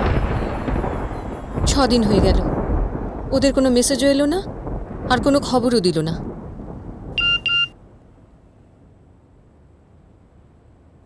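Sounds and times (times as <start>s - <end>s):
phone alert beeps: 7.2s - 7.8s.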